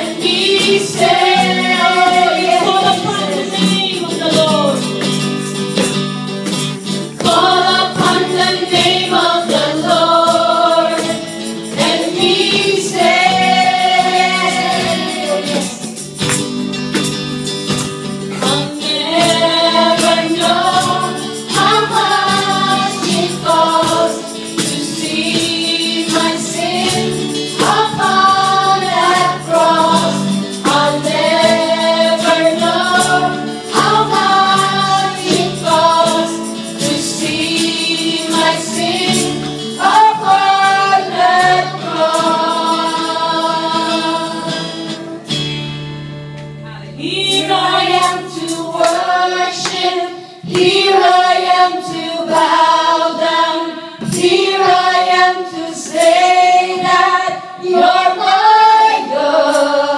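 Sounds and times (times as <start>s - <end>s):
women singing into microphones: 0.0s - 5.0s, 7.2s - 16.0s, 18.3s - 45.3s, 47.0s - 59.9s
acoustic and electric guitars: 0.0s - 59.9s
cajon beat: 0.0s - 59.9s.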